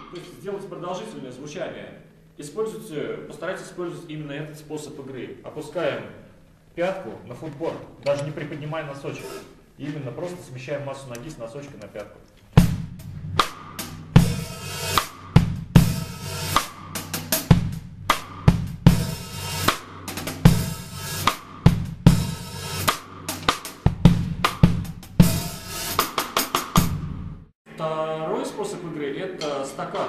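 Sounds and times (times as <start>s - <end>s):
drum kit groove: 11.1s - 27.4s
hi-hat cymbals rustling: 12.6s - 26.6s.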